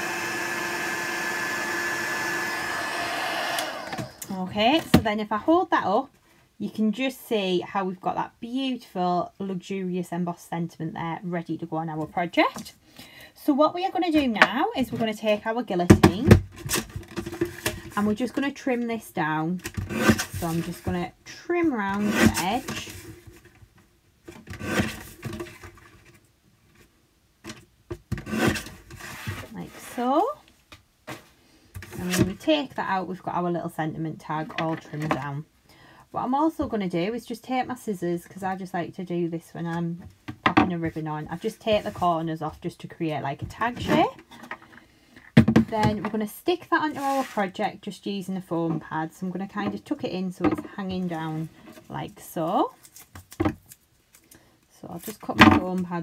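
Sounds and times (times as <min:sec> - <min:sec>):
paper trimmer slicing card: 0:00.0 - 0:04.2
heat gun blowing: 0:00.0 - 0:04.3.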